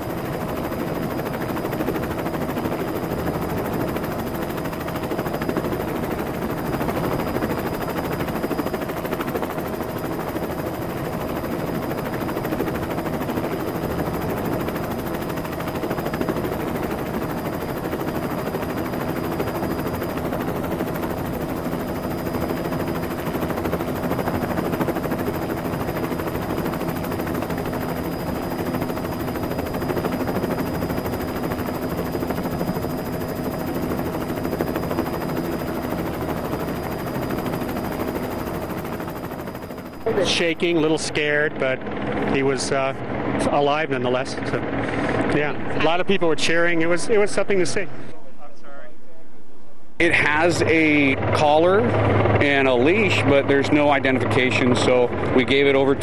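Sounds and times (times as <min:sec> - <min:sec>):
helicopter rotor chopping: 0:00.0 - 0:48.1, 0:50.0 - 0:56.0
helicopter engine hum: 0:00.0 - 0:48.4, 0:50.1 - 0:56.0.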